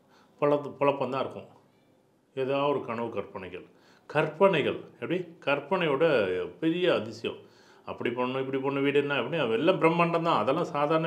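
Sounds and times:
man speaking: 0:00.4 - 0:01.6, 0:02.3 - 0:11.0.

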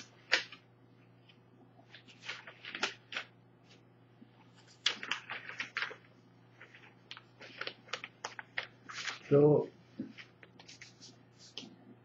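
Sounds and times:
paper rustling and crinkling: 0:01.8 - 0:03.8, 0:04.6 - 0:11.8.

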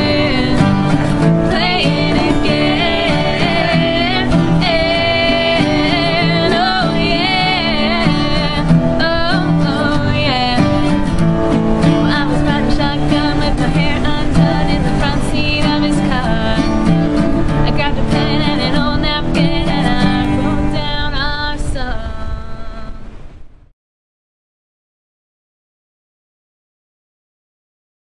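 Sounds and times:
second singing voice: 0:00.0 - 0:11.1
acoustic guitars strummed: 0:00.0 - 0:23.1
woman singing: 0:00.0 - 0:23.1.

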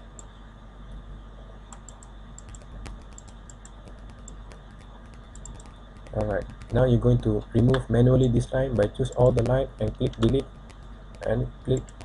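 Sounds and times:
steady low hum: 0:00.0 - 0:12.0
mouse and keyboard clicks: 0:01.8 - 0:06.8
man talking: 0:06.1 - 0:10.4, 0:11.2 - 0:11.8.

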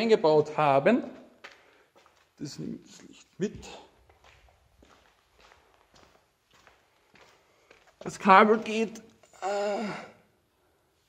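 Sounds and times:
footsteps on concrete: 0:01.0 - 0:09.0.

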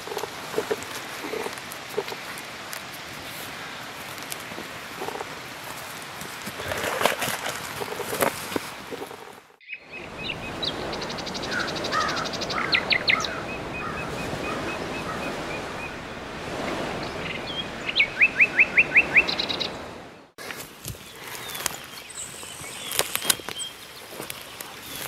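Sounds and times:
songbirds singing: 0:09.6 - 0:20.3, 0:20.9 - 0:25.0.

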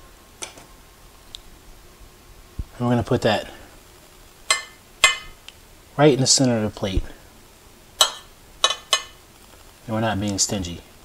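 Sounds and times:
metal spoon clinking on ceramic plate: 0:04.5 - 0:05.4, 0:08.0 - 0:09.2.

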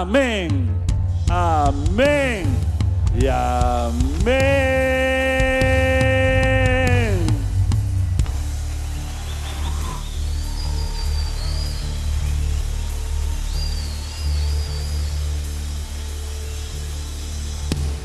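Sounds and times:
keyboard notes: 0:00.0 - 0:08.5
bass notes: 0:00.0 - 0:18.0.

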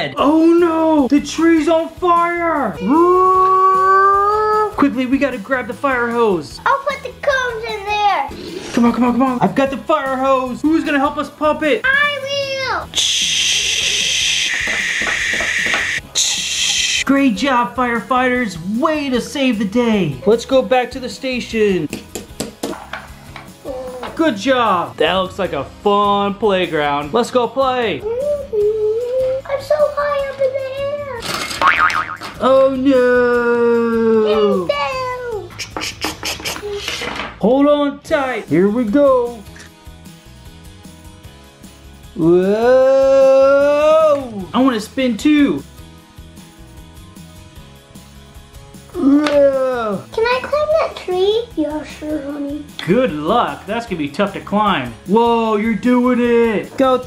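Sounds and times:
background music: 0:00.0 - 0:57.0
child's playful vocal cry: 0:02.8 - 0:04.8, 0:23.6 - 0:24.2, 0:28.0 - 0:31.2, 0:34.1 - 0:35.8.

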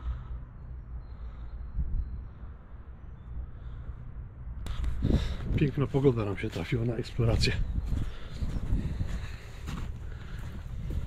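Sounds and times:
wind rumble: 0:00.0 - 0:11.0.

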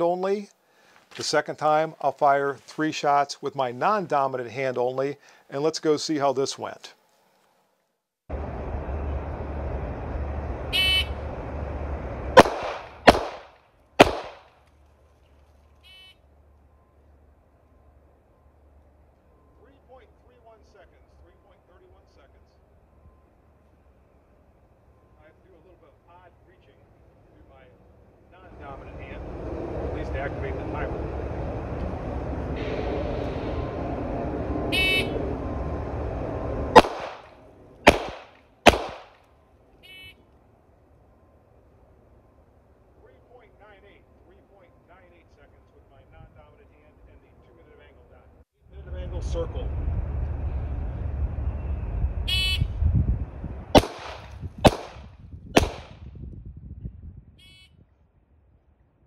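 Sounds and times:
handgun shots: 0:12.4 - 0:14.5, 0:36.8 - 0:37.3, 0:37.9 - 0:39.2, 0:53.8 - 0:56.0
wind rumbling on microphone: 0:48.8 - 0:59.0.

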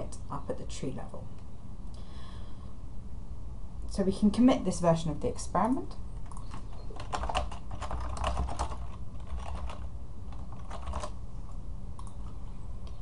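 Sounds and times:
typing on computer keyboard: 0:06.2 - 0:11.2.

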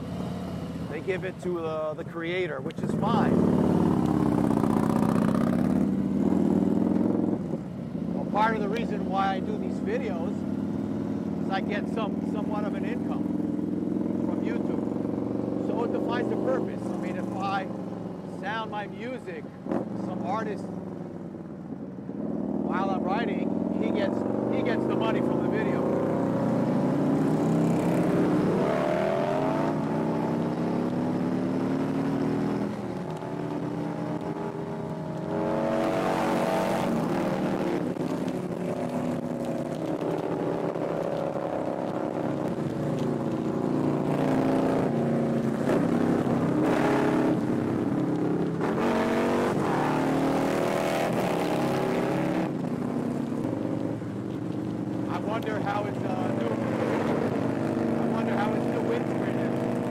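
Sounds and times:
motorcycle engine running: 0:00.0 - 0:50.4, 0:51.1 - 0:59.9.

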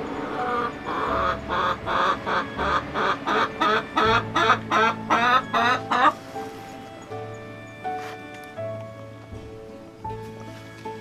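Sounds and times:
chicken clucking: 0:00.0 - 0:06.3
background music: 0:00.0 - 0:11.0.

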